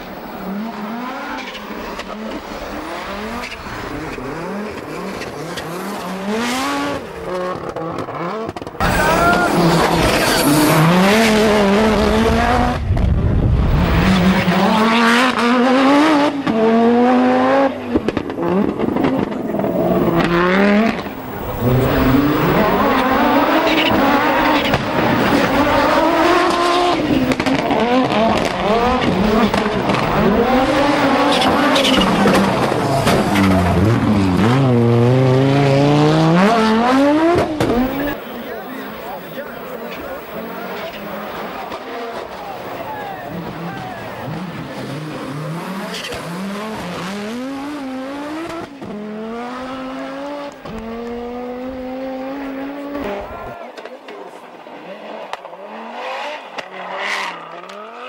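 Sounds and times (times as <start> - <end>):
rally car engines revving: 0.0 - 58.0.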